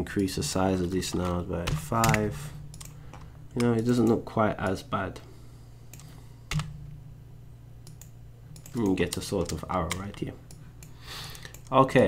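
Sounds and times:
low hum: 0.0 - 11.8.

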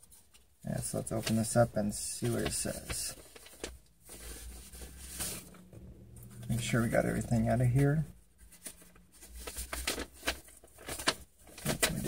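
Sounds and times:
paper rustling and crinkling: 0.0 - 5.7, 6.4 - 12.0.

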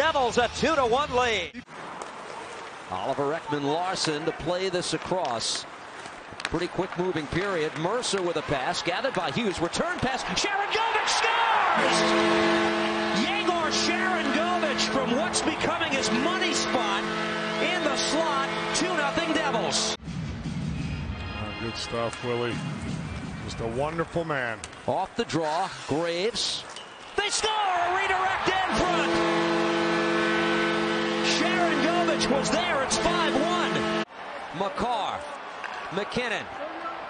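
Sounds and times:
crowd cheering: 6.5 - 19.9, 27.0 - 37.0
goal horn chord: 11.7 - 20.0, 27.6 - 34.1.

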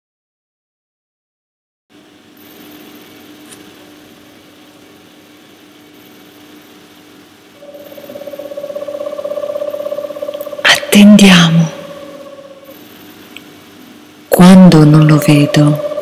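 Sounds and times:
faint hiss with low hum: 1.9 - 16.0
rapidly pulsing hum: 2.0 - 16.0.

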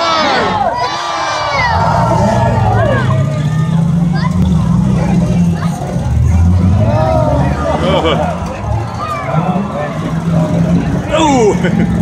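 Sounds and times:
car engines droning: 0.0 - 12.0
spectators chattering: 0.0 - 12.0.

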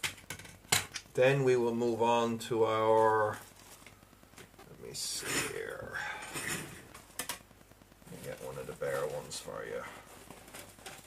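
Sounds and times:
man speaking: 1.1 - 3.4, 4.6 - 6.4, 8.0 - 10.1.

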